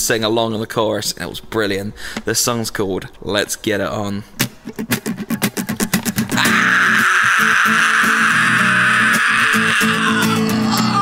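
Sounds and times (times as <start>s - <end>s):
guitar strumming: 4.4s - 11.0s.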